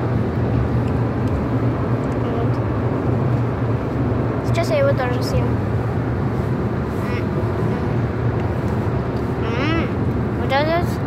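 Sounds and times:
road and engine rumble in car: 0.0 - 11.0.

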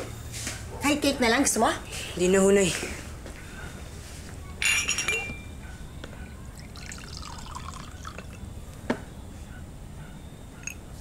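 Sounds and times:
glass clinking on surface: 4.6 - 5.6, 6.8 - 8.4, 10.6 - 10.9
water pouring into glass: 6.5 - 8.4.

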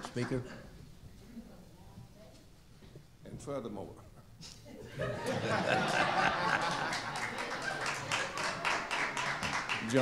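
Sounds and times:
audience laughing: 4.9 - 8.8
hand claps: 6.7 - 10.0.

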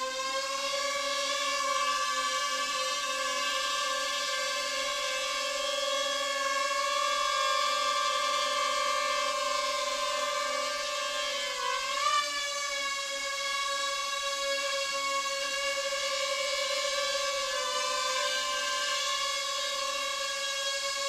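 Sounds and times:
drone propellers whining: 0.0 - 21.0.

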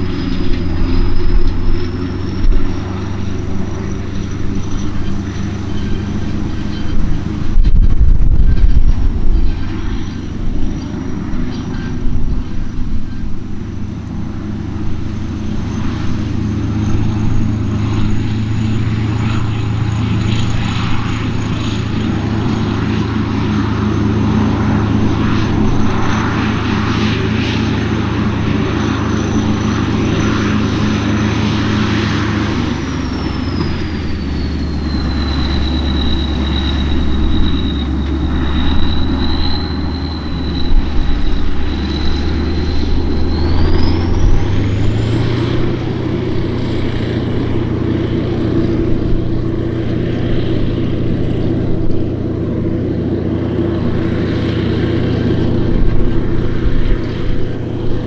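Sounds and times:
diesel engine working under load: 0.0 - 58.0
wind buffeting microphone: 0.0 - 58.0
thin high whistle: 28.5 - 45.6.

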